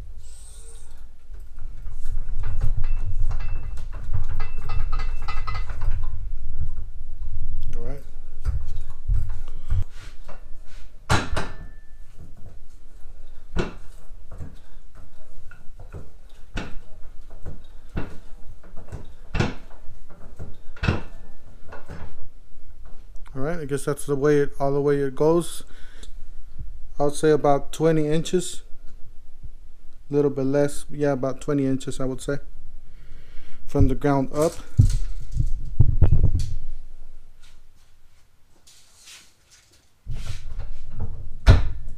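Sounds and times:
floor jack metal clunks: 11.1 - 12.3, 15.8 - 22.2
low handling thumps and knocks: 34.7 - 36.7.

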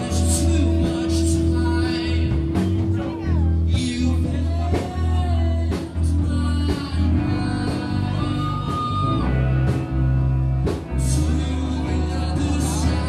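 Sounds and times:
electric guitar: 0.0 - 13.0
heavy drum beats: 0.0 - 13.0
live rock band playing: 0.0 - 13.0
person singing: 0.0 - 13.0.

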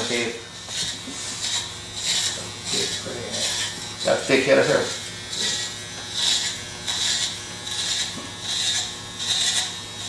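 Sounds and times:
clippers cutting thick hair: 0.0 - 10.0
electric hair clippers humming: 0.0 - 10.0.

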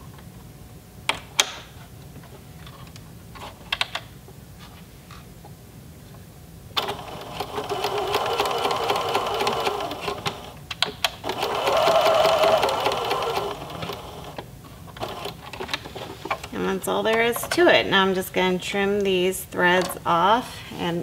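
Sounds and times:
sewing machine stitching: 6.8 - 10.5, 11.2 - 14.4, 15.0 - 15.7.

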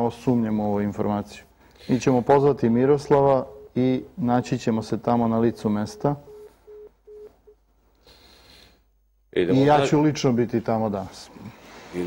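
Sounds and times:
telephone busy tone beeps: 3.5 - 3.9, 5.2 - 7.6.

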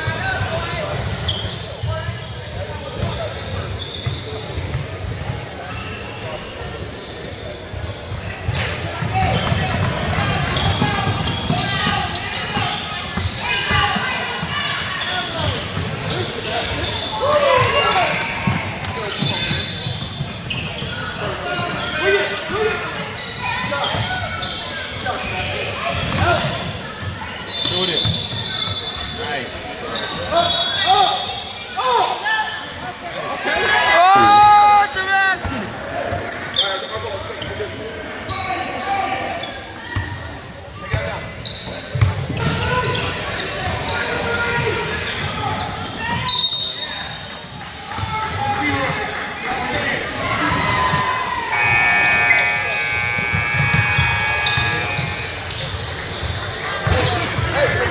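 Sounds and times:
loud shout: 33.4 - 35.6
voices calling out: 41.4 - 57.9.

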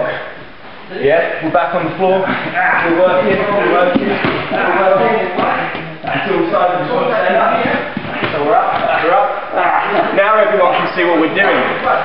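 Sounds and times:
man talking: 0.9 - 12.0.

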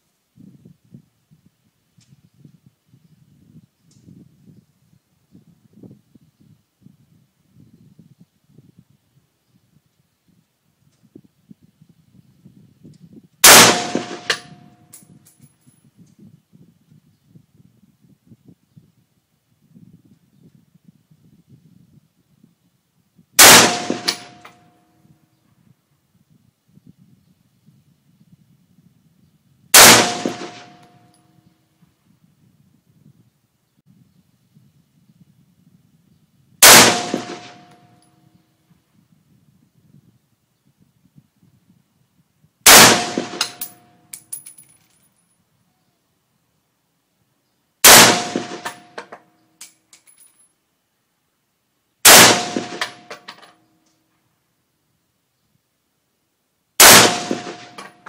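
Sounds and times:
rifle shot: 13.4 - 14.7, 23.4 - 24.6, 29.8 - 31.0, 36.6 - 37.8, 42.7 - 43.8, 47.8 - 49.1, 52.0 - 53.2, 56.8 - 58.0
light metal clinks: 14.8 - 16.2, 43.4 - 45.5, 49.6 - 50.6.

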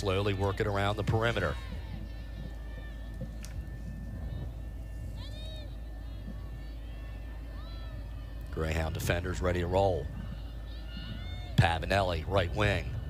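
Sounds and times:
distant players shouting: 0.0 - 13.0
low hum: 0.0 - 13.0.

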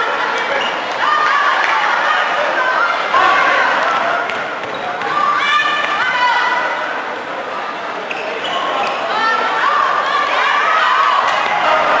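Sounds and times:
players shouting: 0.0 - 7.1, 8.2 - 12.0
echoing play on indoor court: 0.0 - 12.0
shoe squeaks: 4.6 - 5.0, 8.1 - 9.1.

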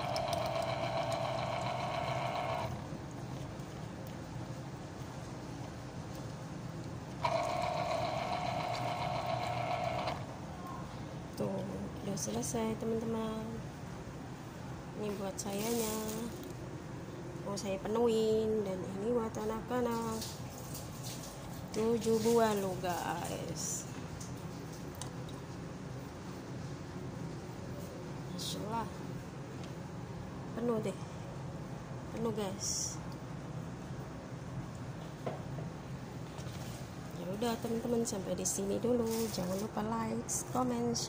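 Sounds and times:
citrus juicer motor whining: 0.0 - 2.9, 7.2 - 10.4.

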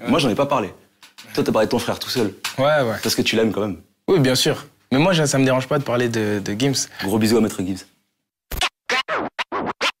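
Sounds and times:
dj scratches: 8.5 - 10.0.

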